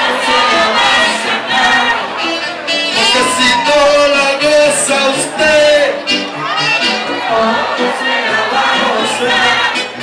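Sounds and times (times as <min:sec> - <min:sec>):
live merengue band: 0:00.0 - 0:10.0
voices singing together: 0:00.0 - 0:10.0.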